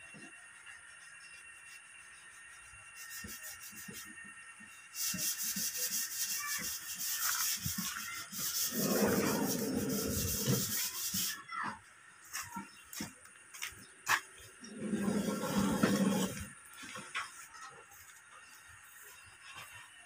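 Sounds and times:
scraping and rubbing: 0:05.0 - 0:11.5, 0:14.1 - 0:17.4
metal drawer sliding open: 0:14.7 - 0:16.4.

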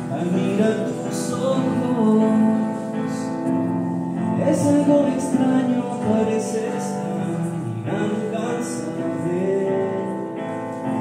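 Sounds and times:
man singing: 0:00.0 - 0:03.5, 0:04.2 - 0:11.0
digital keyboard piano: 0:00.0 - 0:11.0.

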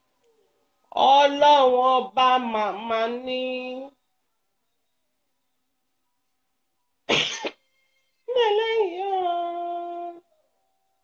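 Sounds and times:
person coughing: 0:07.1 - 0:07.6.

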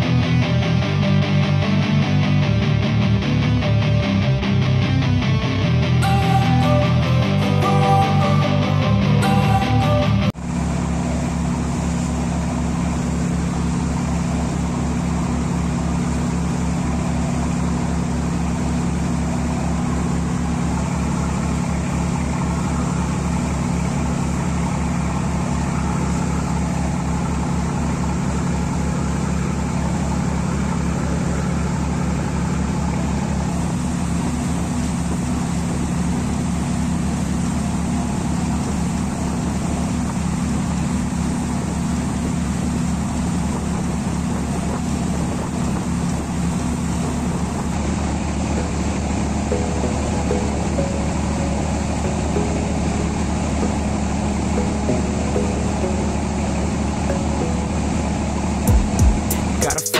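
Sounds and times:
boat engines droning: 0:05.6 - 0:59.8
short music sting: 0:05.8 - 0:10.3, 0:48.4 - 0:59.9
wind: 0:10.3 - 0:58.7.

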